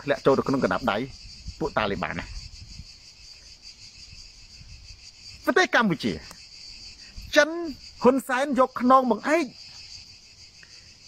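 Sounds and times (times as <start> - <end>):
people talking: 0.0 - 2.3
insects chirring: 0.0 - 11.0.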